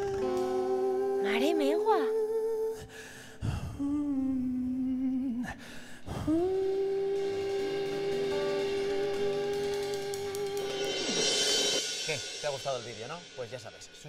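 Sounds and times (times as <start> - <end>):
man singing held notes: 0.0 - 2.9, 3.8 - 11.3
drums and cymbals: 6.0 - 14.0
live band music: 6.4 - 13.2.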